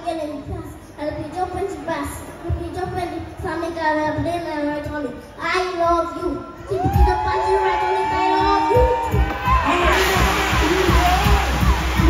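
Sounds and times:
soca music over loudspeakers: 0:06.9 - 0:12.0
kick-drum beat: 0:08.6 - 0:12.0
stage jet hissing: 0:09.6 - 0:12.0.

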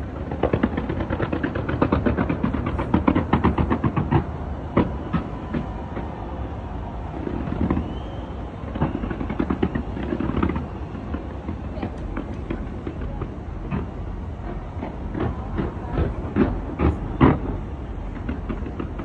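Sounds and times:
fireworks bangs and crackles: 0:00.0 - 0:19.0
firework whistle: 0:02.6 - 0:12.8.

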